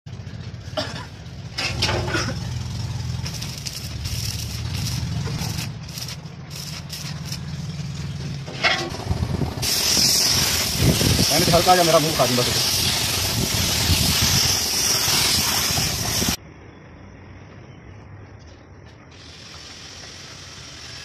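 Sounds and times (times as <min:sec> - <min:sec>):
spray gun hissing: 0:09.5 - 0:16.4, 0:19.1 - 0:21.0.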